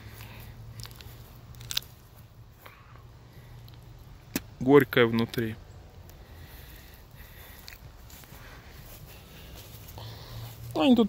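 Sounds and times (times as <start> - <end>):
teeth crunching walnut husk: 0.7 - 2.2.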